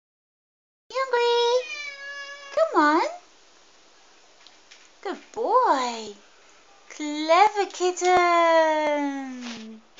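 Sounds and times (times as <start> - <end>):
faint room noise: 0.9 - 9.9.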